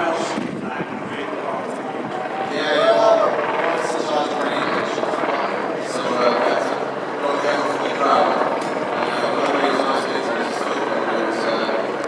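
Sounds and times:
man speaking over public address: 0:00.0 - 0:12.0.

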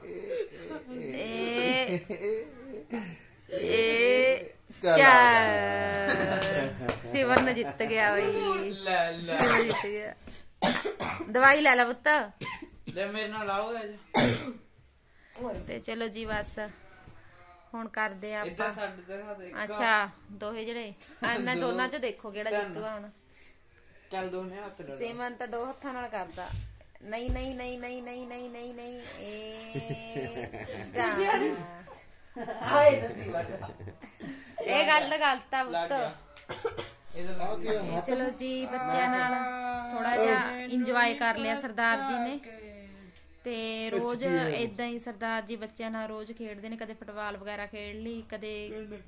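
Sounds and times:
person coughing: 0:09.3 - 0:10.0, 0:10.6 - 0:11.3, 0:14.2 - 0:14.6, 0:36.5 - 0:38.1
man speaking: 0:37.1 - 0:40.8.

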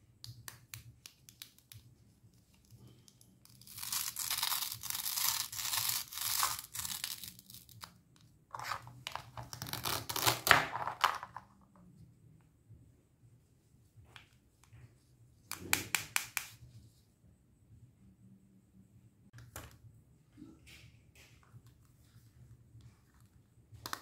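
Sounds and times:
hook-and-loop fastener ripping: 0:02.6 - 0:07.8, 0:09.4 - 0:10.6.

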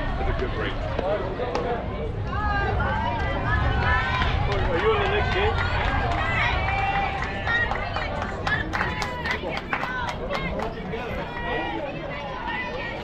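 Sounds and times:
steady low rumble: 0:00.0 - 0:11.8
voices talking and calling out: 0:00.0 - 0:13.0.

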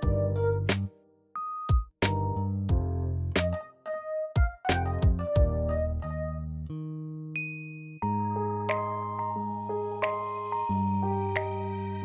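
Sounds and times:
held keyboard chords: 0:00.0 - 0:12.0.

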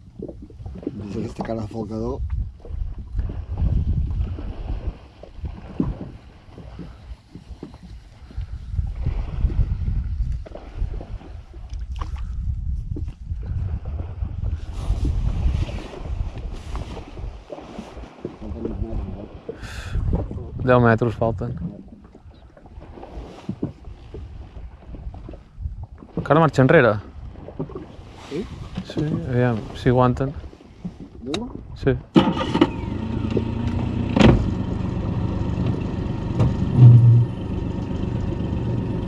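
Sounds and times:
water against hull: 0:00.0 - 0:39.0
wind rumble on microphone: 0:00.0 - 0:39.0.

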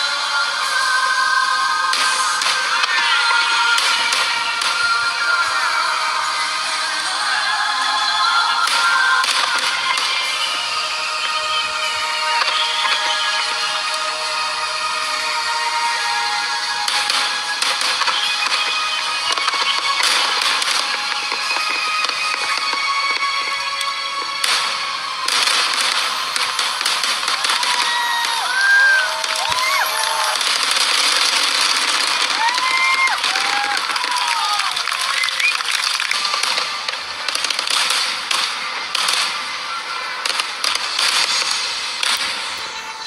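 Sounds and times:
background music: 0:00.0 - 0:43.0
fireworks bursting and crackling: 0:00.0 - 0:43.0
whistling fireworks: 0:00.0 - 0:43.0.

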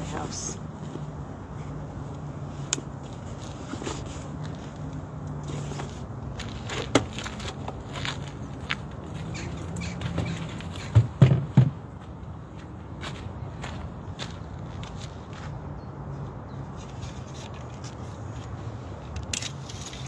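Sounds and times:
knocks on wooden bench: 0:10.9 - 0:11.8.

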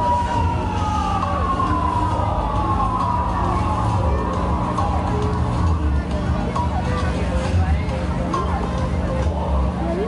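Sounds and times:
continuous low bass: 0:00.0 - 0:10.0.

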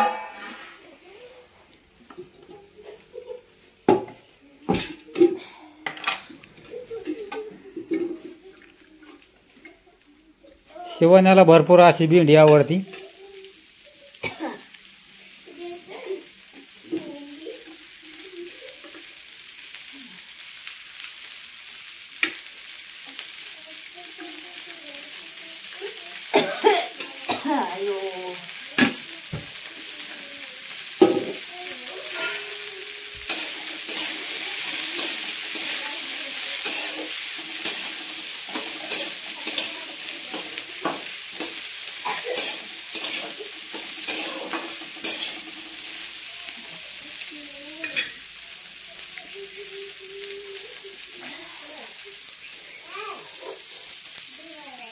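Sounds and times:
metal spatula scraping a pan: 0:00.0 - 0:01.0, 0:31.0 - 0:46.2
vegetables sizzling in a pan: 0:00.0 - 0:54.9.

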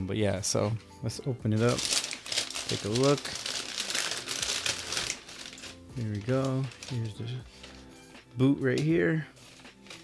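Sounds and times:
tissue paper crinkling: 0:01.6 - 0:07.8, 0:09.4 - 0:10.0.

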